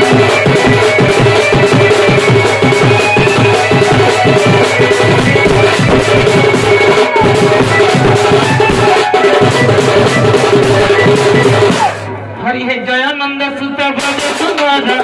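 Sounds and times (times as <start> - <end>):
dhol drum beaten fast: 0.0 - 12.1, 13.7 - 15.0
steady high tone: 0.0 - 12.4.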